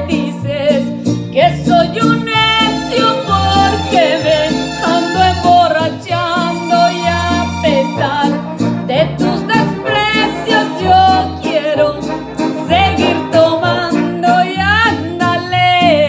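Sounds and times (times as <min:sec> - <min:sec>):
karaoke backing track: 0:00.0 - 0:16.0
woman singing with vibrato: 0:00.0 - 0:16.0.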